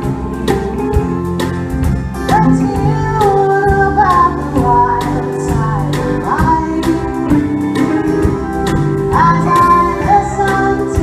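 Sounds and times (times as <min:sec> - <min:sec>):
acoustic guitar: 0:00.0 - 0:11.0
drum kit beat: 0:00.0 - 0:11.0
keyboard: 0:00.0 - 0:11.0
woman singing: 0:02.3 - 0:07.8, 0:09.1 - 0:11.0.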